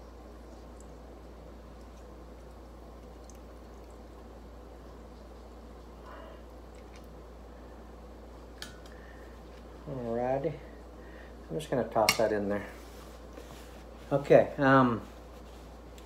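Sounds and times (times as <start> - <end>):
low hum with faint hiss: 0.0 - 16.0.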